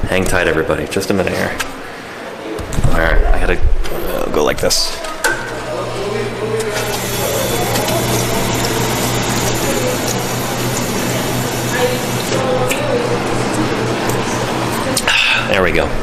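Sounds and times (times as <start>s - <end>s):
drinking fountain water rushing: 6.7s - 14.7s.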